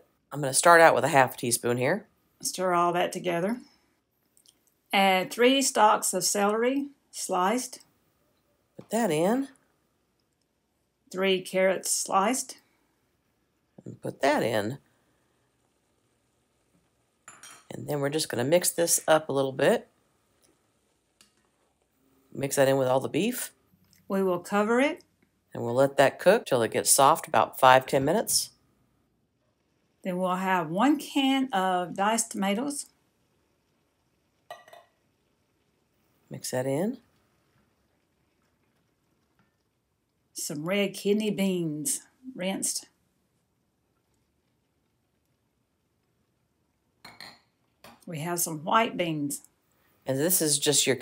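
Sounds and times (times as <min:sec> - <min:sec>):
metal clinking on a pot: 0:17.2 - 0:17.7, 0:34.5 - 0:35.0, 0:47.1 - 0:47.5.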